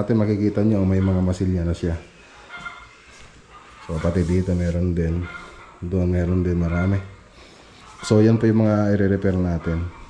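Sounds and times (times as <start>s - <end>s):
person speaking: 3.8s - 7.2s.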